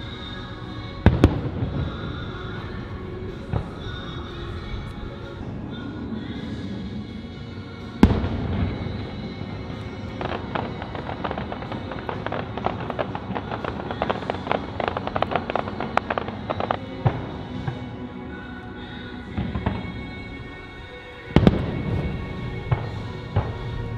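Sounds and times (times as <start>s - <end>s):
music playing: 0.0s - 23.9s
firework crackling pops: 8.0s - 17.9s, 21.4s - 23.9s.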